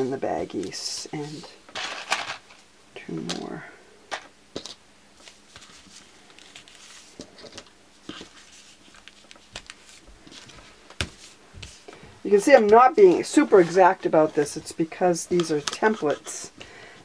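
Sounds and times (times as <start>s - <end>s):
soft paper rustling: 5.2s - 16.5s.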